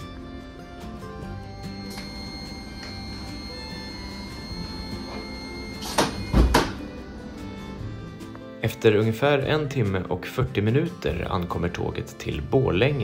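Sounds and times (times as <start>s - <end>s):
background music: 0.0s - 13.0s
sliding train door closing: 5.8s - 6.9s.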